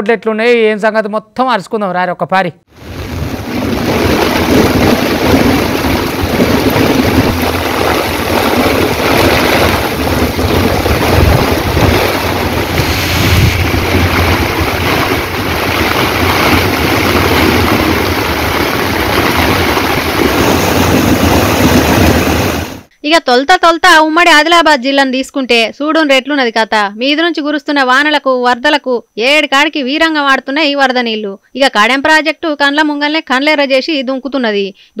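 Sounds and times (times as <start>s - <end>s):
heavy rain: 2.7s - 22.9s
wind buffeting microphone: 2.8s - 22.9s.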